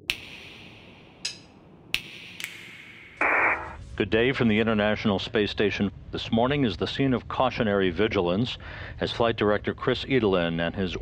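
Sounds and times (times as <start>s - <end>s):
sharp electronic clicks: 0.0s - 3.8s
radio static: 3.2s - 3.8s.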